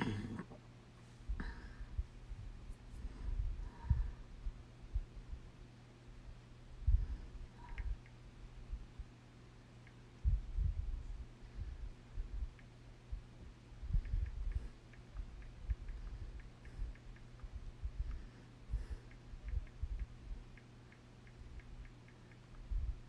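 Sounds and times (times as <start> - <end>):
steady low hum: 0.0 - 23.0
faint light ticks: 7.6 - 8.2, 14.0 - 18.3, 18.9 - 22.8.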